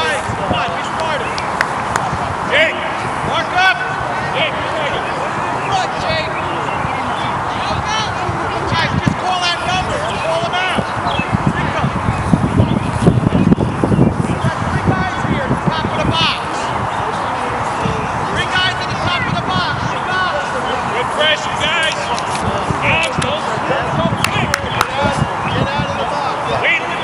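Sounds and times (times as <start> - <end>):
distant voices calling out: 0.0 - 27.0.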